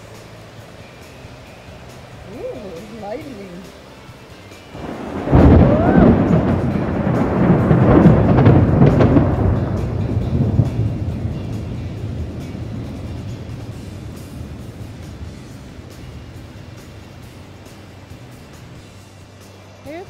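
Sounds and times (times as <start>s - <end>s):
thunder rumble: 4.7s - 18.8s.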